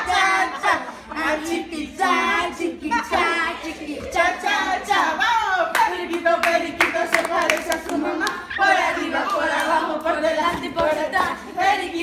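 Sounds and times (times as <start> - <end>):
children chanting and shouting: 0.0 - 12.0.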